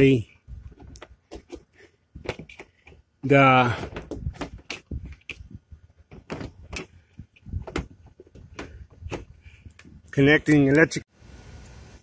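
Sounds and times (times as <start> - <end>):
hand handling camera knocks: 6.1 - 9.4.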